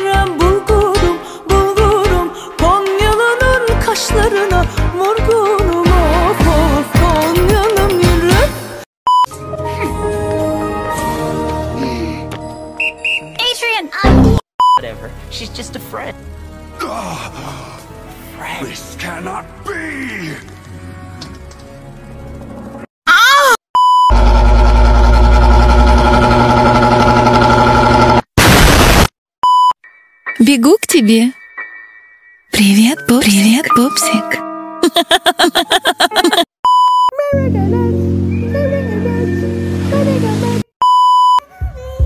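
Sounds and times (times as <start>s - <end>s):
music: 0.0s - 22.9s, 29.8s - 34.9s, 37.2s - 40.7s
censor beep: 14.6s - 14.8s, 23.8s - 24.2s, 29.4s - 29.8s, 36.6s - 37.1s, 40.8s - 41.4s
loud buzzing bass chord: 24.1s - 29.0s.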